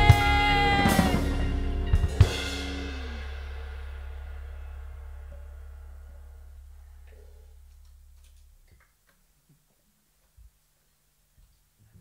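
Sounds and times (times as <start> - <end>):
low held band note: 0.0 - 8.7.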